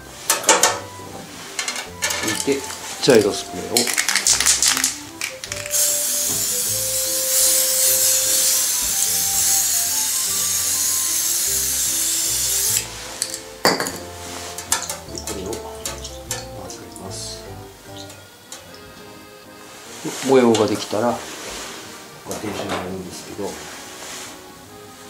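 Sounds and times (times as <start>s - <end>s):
background music: 0.0s - 25.0s
spray paint can hissing: 3.8s - 14.7s.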